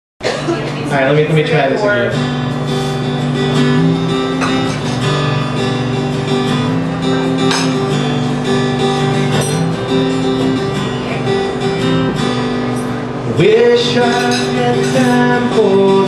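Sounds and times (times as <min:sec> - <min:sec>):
acoustic guitar strumming: 0:00.2 - 0:16.0.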